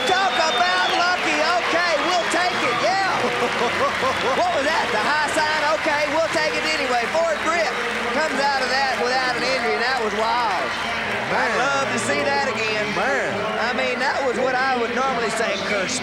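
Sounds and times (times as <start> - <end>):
indistinct voices talking: 0.0 - 16.0.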